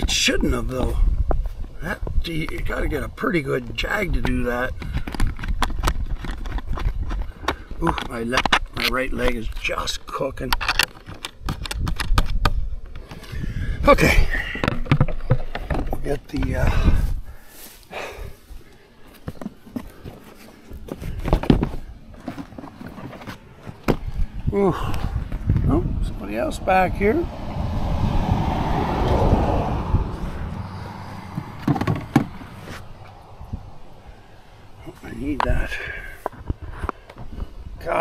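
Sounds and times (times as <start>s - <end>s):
shuffling footsteps: 16.4s - 25.7s, 30.2s - 33.7s
clothing and gear rustling: 17.0s - 24.4s
steady low rumble: 23.5s - 35.7s.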